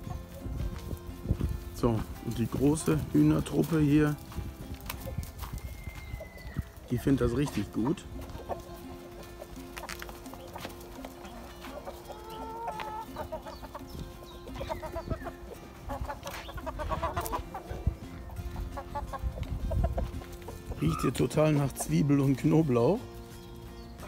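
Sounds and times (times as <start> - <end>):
chickens clucking and calling: 0.0 - 24.0.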